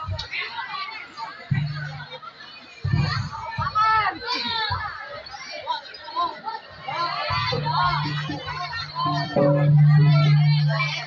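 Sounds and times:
children shouting and chattering: 0.0s - 11.0s
crowd: 0.0s - 11.0s
dull low thumps: 7.3s - 11.0s.

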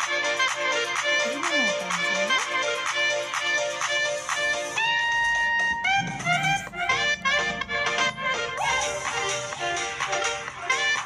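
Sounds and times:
upbeat tropical music: 0.0s - 11.0s.

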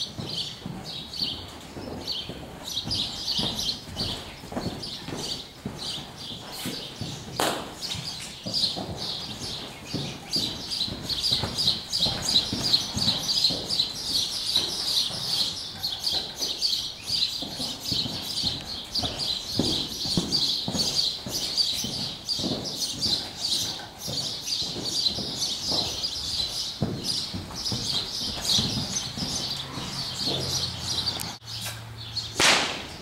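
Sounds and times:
horse hooves thudding: 0.0s - 31.6s
birds chirping: 0.0s - 33.0s.

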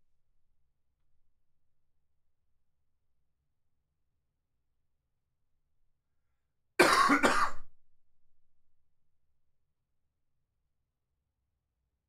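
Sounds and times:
man coughing to clear throat: 6.8s - 7.6s.

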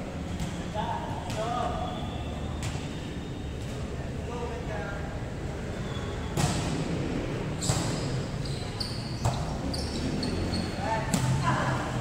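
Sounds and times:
sneaker squeaks on court floor: 0.4s - 3.8s, 5.8s - 6.6s, 7.5s - 11.4s.

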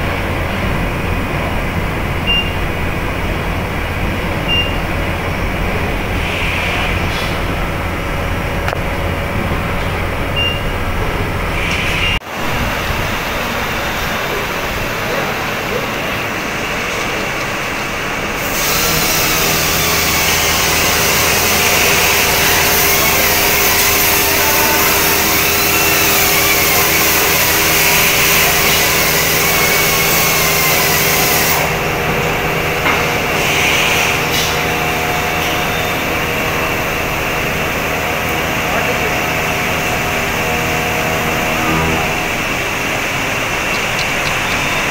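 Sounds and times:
factory machinery hum: 0.0s - 44.9s
loud steady hiss: 10.8s - 41.5s.

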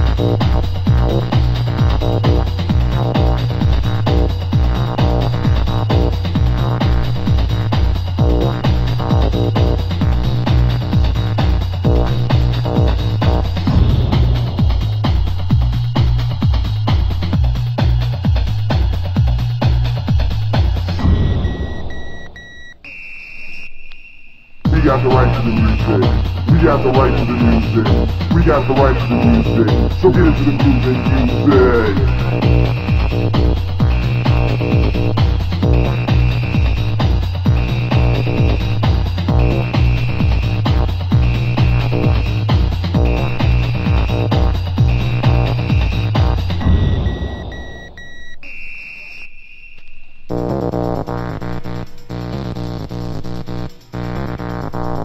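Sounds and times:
repeated electronic beep: 21.0s - 35.1s, 44.9s - 50.1s
held high electronic tone: 21.0s - 40.5s.

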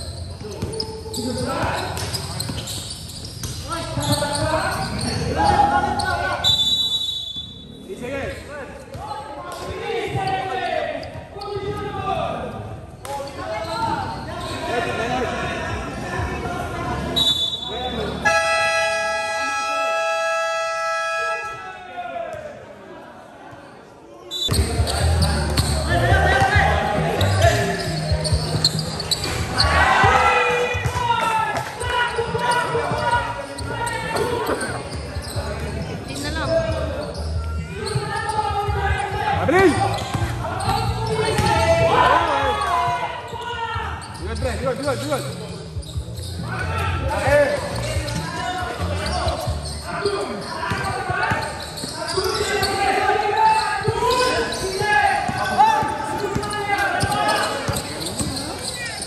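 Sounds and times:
basketball bouncing on court: 30.8s - 34.3s, 39.6s - 42.1s, 50.7s - 52.8s, 53.8s - 58.8s.

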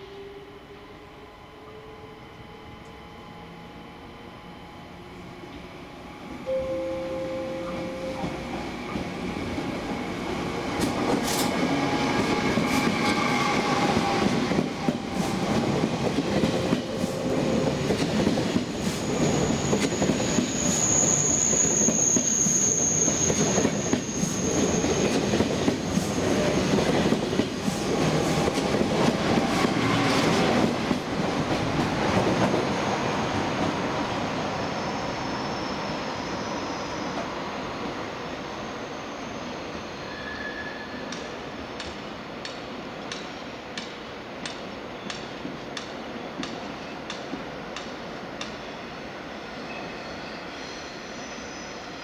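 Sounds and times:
train wheels clacking over rails: 10.5s - 32.7s
high wheel squeal: 18.9s - 25.3s, 34.6s - 37.2s, 38.5s - 41.3s.

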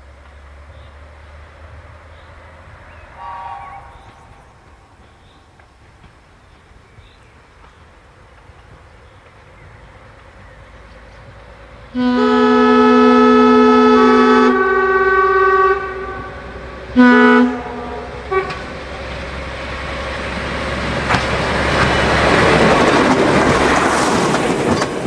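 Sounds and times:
train rumble passing: 0.0s - 25.0s
railcar horn blasts: 3.1s - 4.2s, 11.9s - 18.9s
wheels clacking over rail joints: 18.1s - 25.0s.

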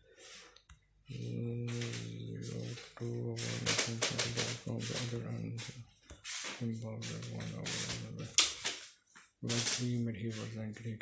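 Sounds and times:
man's drawn-out voice: 1.1s - 5.8s, 6.4s - 8.5s, 9.4s - 11.0s
man speaking: 1.1s - 8.7s, 9.4s - 11.0s
sharp click: 7.7s - 8.9s.

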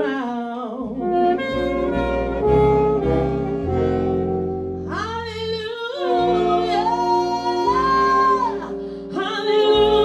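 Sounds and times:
woman singing jazz: 0.0s - 10.0s
big band playing: 1.0s - 5.2s.

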